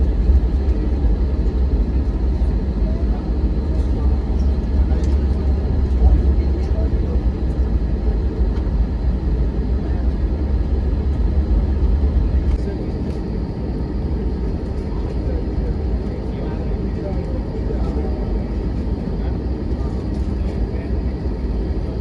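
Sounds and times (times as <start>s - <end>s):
jet engines rumbling: 0.0s - 22.0s.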